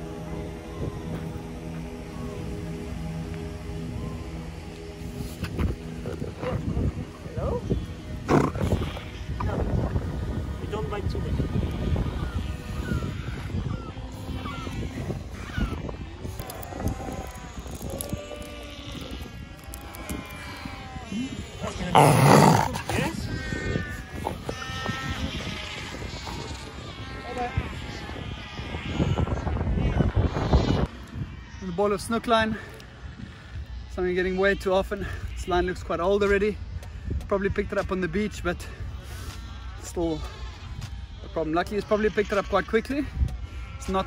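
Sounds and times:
seal pup calling: 11.5s - 29.2s.

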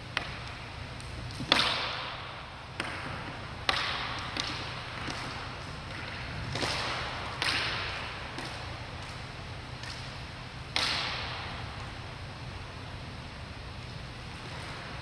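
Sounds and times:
rope whip cracking: 0.1s - 12.0s.

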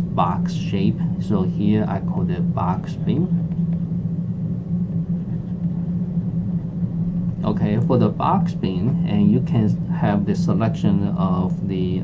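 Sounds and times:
low-pitched hum: 0.0s - 12.0s.

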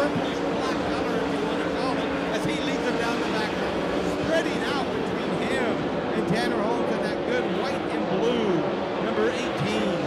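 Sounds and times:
people talking: 0.0s - 10.0s
race car engines droning: 0.0s - 10.0s.

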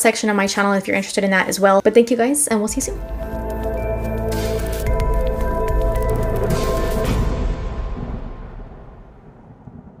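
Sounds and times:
outro music: 2.7s - 9.4s
low rumbling whoosh: 2.7s - 10.0s.

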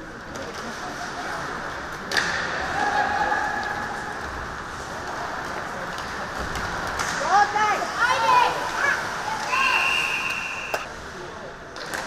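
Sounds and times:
ice hockey arena noise: 0.0s - 12.0s.

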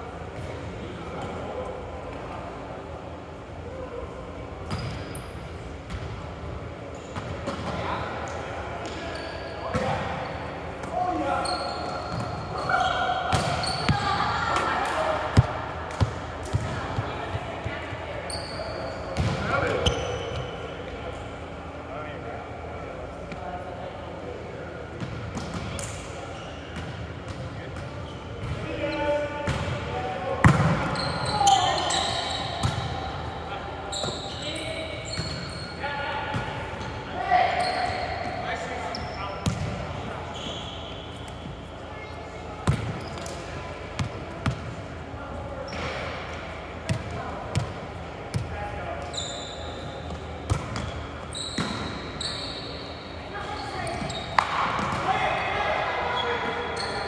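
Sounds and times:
players calling and chatting: 6.5s - 57.0s.

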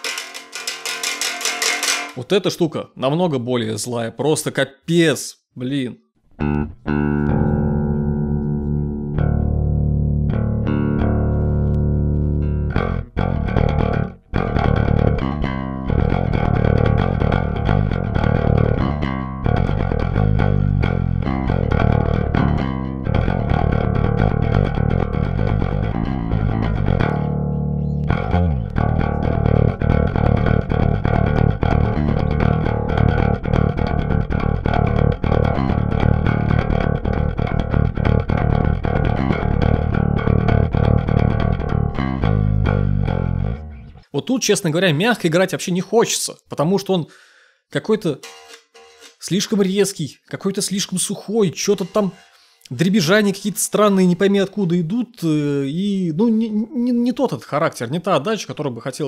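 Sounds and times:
electric bass played fingerstyle: 6.3s - 44.1s, 50.7s - 54.8s.

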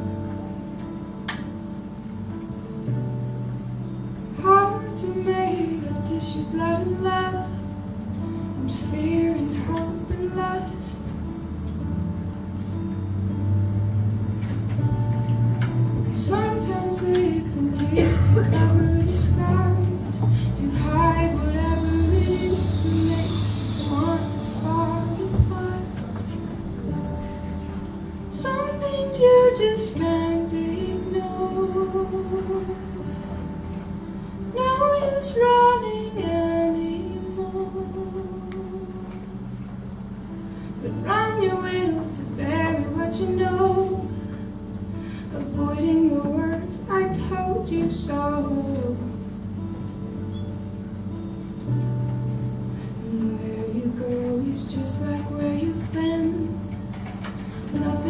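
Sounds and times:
acoustic guitar: 0.0s - 58.0s
woman singing: 4.3s - 7.8s, 8.5s - 11.2s, 16.1s - 27.1s, 28.3s - 33.3s, 34.5s - 39.4s, 40.8s - 44.3s, 45.0s - 49.3s, 53.0s - 58.0s.

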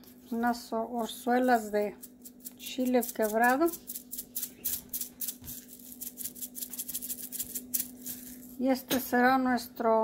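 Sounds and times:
pepper flakes rattling in jar: 1.3s - 8.7s.

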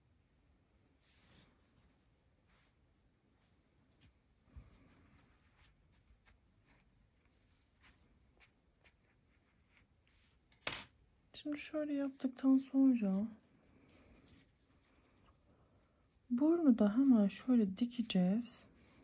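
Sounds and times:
soft rustling of handling: 0.6s - 19.0s.

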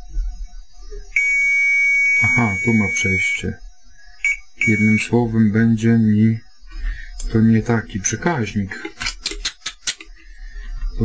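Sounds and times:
test probes clicking on relay pins: 8.8s - 10.2s.

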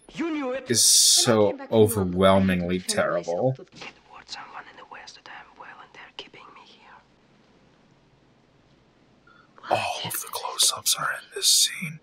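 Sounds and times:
person whispering: 0.7s - 2.0s, 2.8s - 7.0s, 9.6s - 12.0s.

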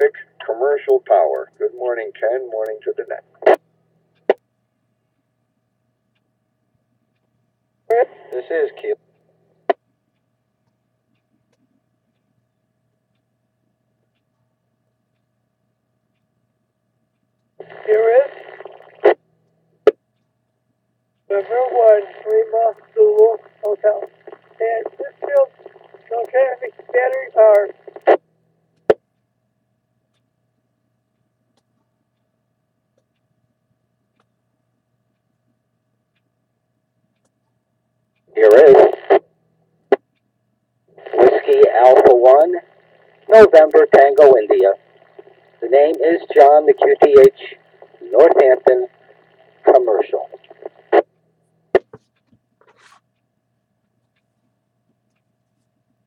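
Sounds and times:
radio voice transmission: 0.0s - 3.6s, 7.9s - 9.0s, 17.6s - 19.2s, 21.3s - 28.2s, 38.3s - 39.2s, 41.0s - 51.1s
faint steady hum: 0.0s - 56.0s.

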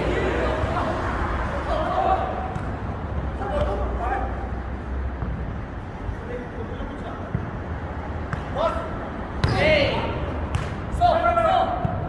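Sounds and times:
players shouting: 0.0s - 4.6s, 8.3s - 12.0s
ball kicked and bouncing: 5.2s - 5.5s, 7.2s - 8.6s.

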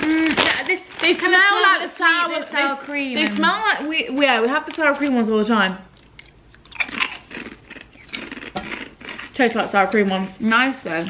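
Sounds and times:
paper crisp packet crinkling: 0.0s - 5.1s
chips being chewed: 5.9s - 9.8s.

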